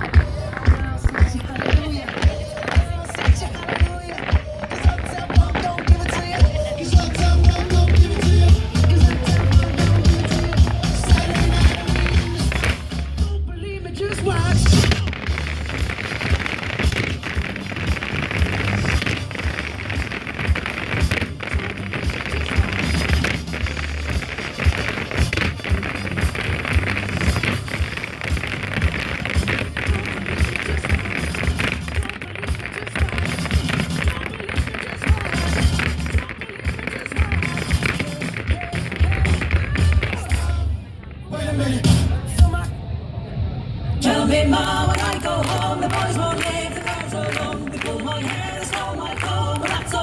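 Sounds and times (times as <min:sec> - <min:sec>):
folk dance music: 0:00.0 - 0:42.7, 0:43.9 - 0:50.0.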